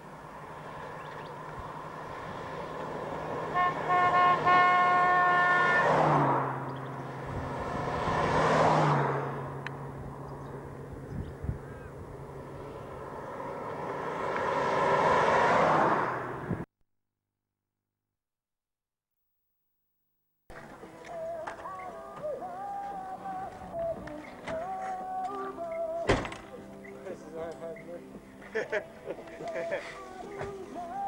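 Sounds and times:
cars passing by: 0.0s - 16.7s, 20.5s - 31.0s
car horn toots: 3.5s - 6.3s.

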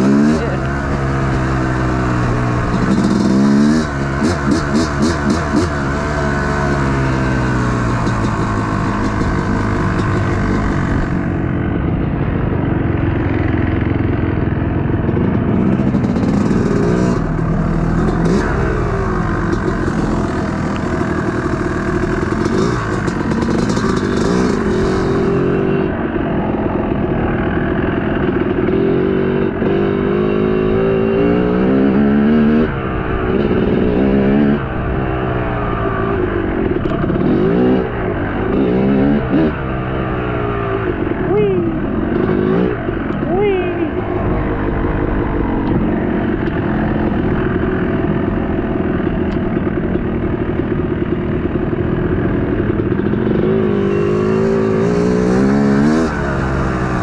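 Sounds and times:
dirt bike engine revving: 0.0s - 57.0s
clatter: 7.7s - 11.1s, 14.3s - 25.4s.

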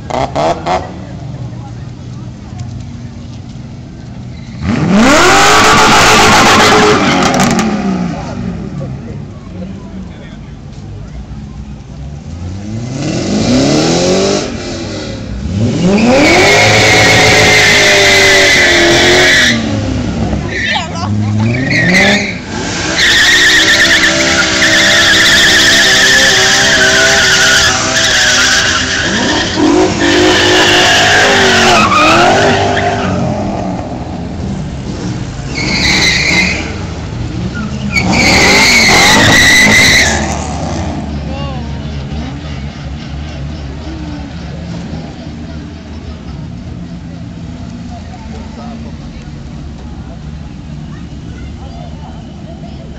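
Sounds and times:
car engines revving: 0.0s - 52.9s
tyres squealing: 20.4s - 33.4s, 35.4s - 36.9s, 37.5s - 40.4s.

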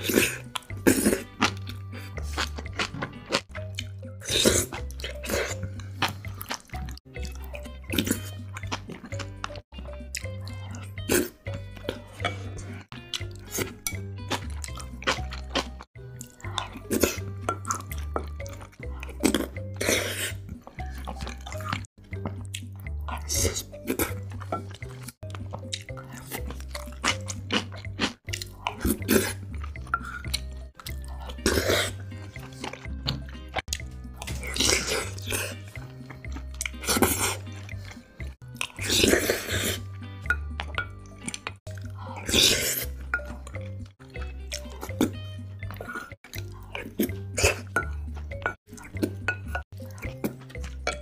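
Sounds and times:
background music with bass line: 0.0s - 51.0s
wet chewing and smacking: 0.0s - 51.0s.

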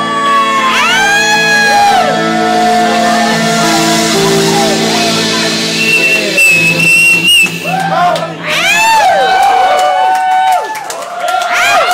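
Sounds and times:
band holding final chord: 0.0s - 9.9s
crowd whooping: 0.0s - 11.9s
high-pitched whistle: 1.0s - 9.2s.

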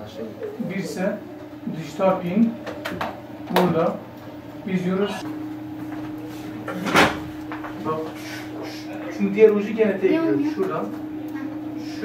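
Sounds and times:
low voices: 7.6s - 12.0s.

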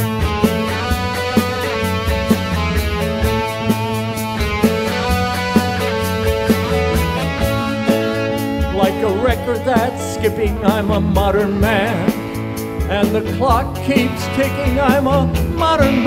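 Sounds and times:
live rock band playing: 0.0s - 16.0s
person singing: 7.1s - 16.0s.

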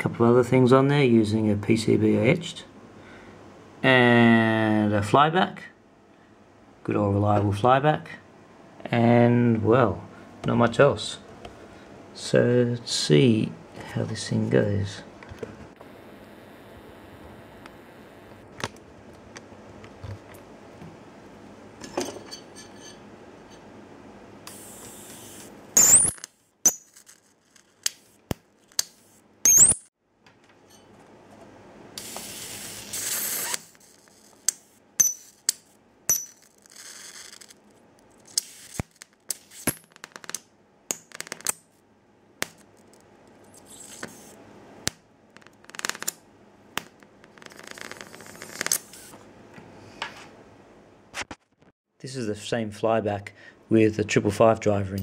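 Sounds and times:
hissing electric arc: 24.5s - 26.1s, 32.0s - 35.3s, 38.3s - 40.3s
electric sparks snapping: 24.5s - 29.9s, 38.2s - 41.7s, 43.7s - 46.2s.

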